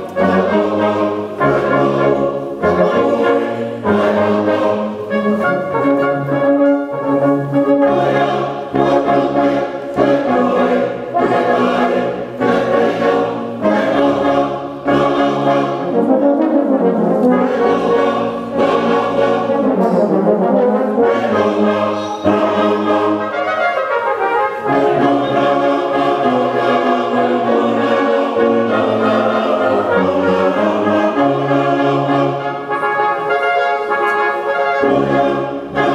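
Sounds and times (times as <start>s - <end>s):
brass band playing a hymn: 0.0s - 35.9s
congregation singing: 0.0s - 35.9s.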